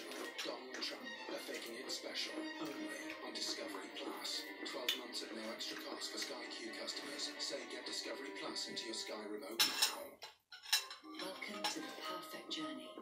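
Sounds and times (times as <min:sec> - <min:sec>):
television music: 0:00.0 - 0:13.0.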